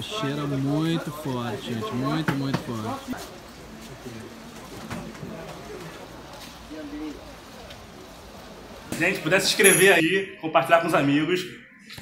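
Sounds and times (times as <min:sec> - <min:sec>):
low steady murmur: 0:00.0 - 0:10.0
people talking in background: 0:00.0 - 0:12.0.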